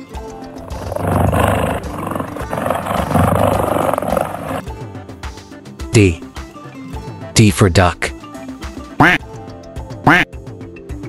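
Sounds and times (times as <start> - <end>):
big cat growling: 0.5 - 4.7.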